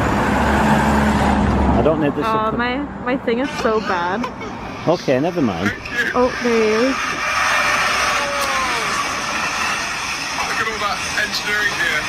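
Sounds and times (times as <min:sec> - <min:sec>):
diesel locomotive passing: 0:00.0 - 0:12.0.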